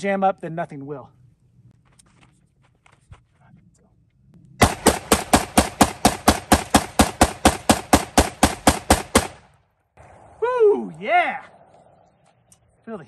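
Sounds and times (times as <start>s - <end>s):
rifle firing rapidly: 4.6s - 9.5s.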